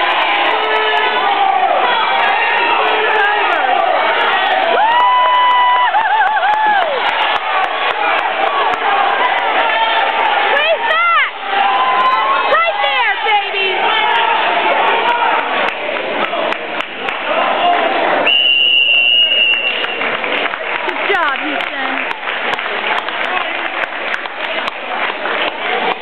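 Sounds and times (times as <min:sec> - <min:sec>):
crowd shouting and cheering: 0:00.0 - 0:26.0.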